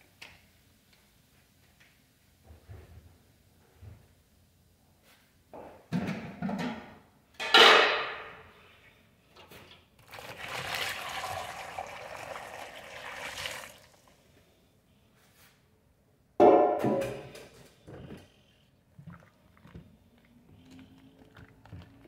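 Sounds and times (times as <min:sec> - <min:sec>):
water pouring into plastic basin: 0:10.0 - 0:14.2.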